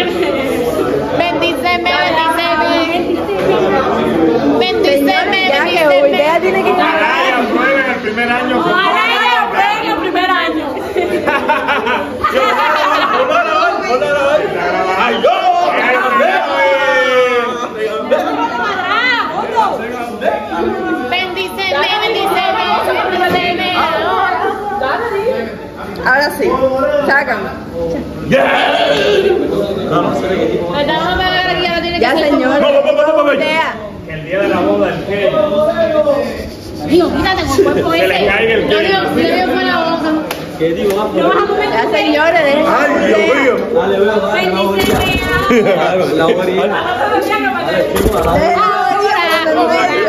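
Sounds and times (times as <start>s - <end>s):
people chattering: 0.0s - 50.0s
people talking and exclaiming: 0.0s - 50.0s.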